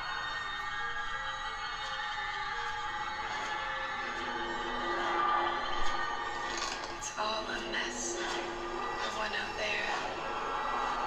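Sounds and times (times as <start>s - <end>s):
droning trailer music: 3.8s - 11.0s.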